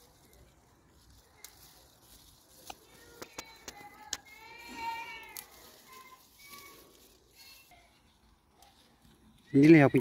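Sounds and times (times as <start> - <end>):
leaves and stems snapping: 0.0 - 7.2.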